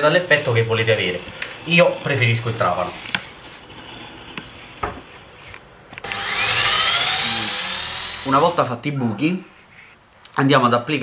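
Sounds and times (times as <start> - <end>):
electric drill whining: 6.0 - 8.7.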